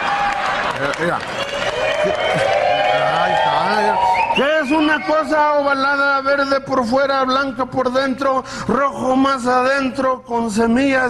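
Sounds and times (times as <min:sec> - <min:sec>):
men speaking: 0:02.2 - 0:11.0.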